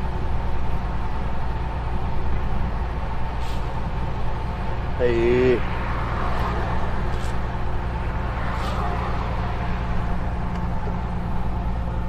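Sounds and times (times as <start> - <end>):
road and wind noise: 0.0 - 12.0
truck diesel engine droning: 0.0 - 12.0
car passing: 4.8 - 12.0.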